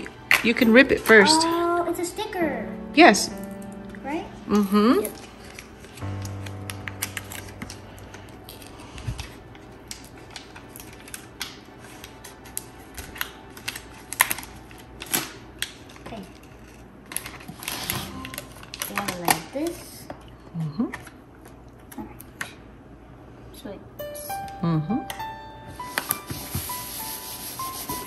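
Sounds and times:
paper stickers crinkling: 4.5 - 19.9.

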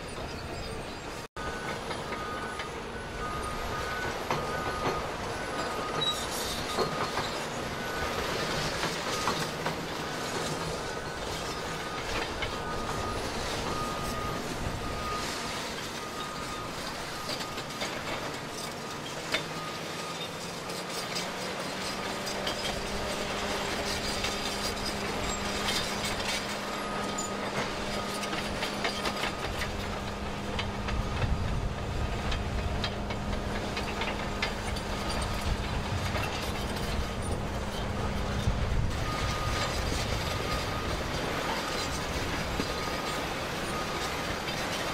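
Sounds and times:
excavator engine and hydraulic drone: 0.0 - 44.9.

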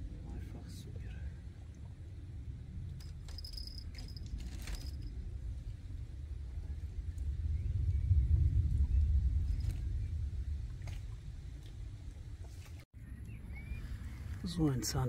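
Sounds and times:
low deep rumble: 0.0 - 14.6.

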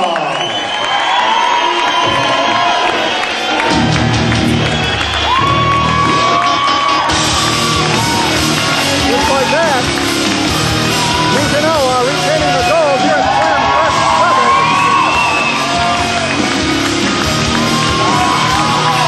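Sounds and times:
crowd whooping and shouting: 0.0 - 19.0
theme music with sung melody: 5.4 - 19.0.

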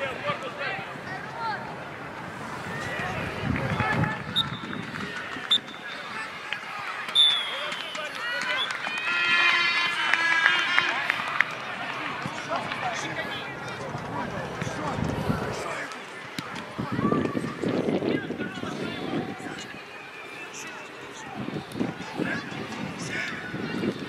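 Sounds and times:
players shouting: 0.0 - 17.6.

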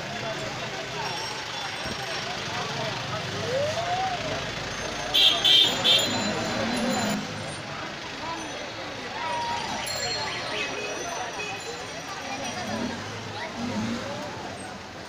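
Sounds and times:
crowd voices: 0.0 - 15.0
traffic noise: 0.0 - 15.0.

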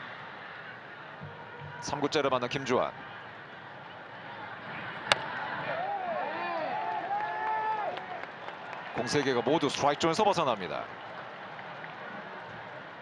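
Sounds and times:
stadium crowd noise: 0.0 - 13.0.

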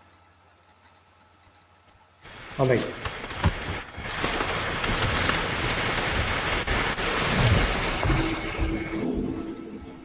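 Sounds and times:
steady rushing noise: 2.2 - 10.0.

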